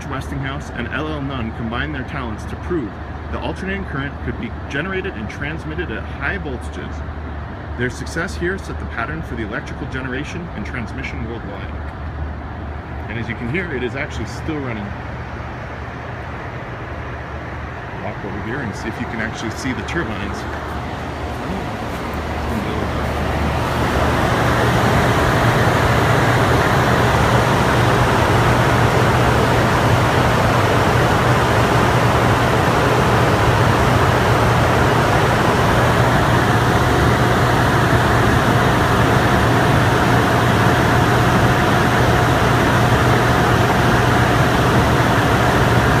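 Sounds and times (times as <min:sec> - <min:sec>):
turbine machine hum: 0:00.0 - 0:46.0
thin high whine: 0:13.1 - 0:46.0.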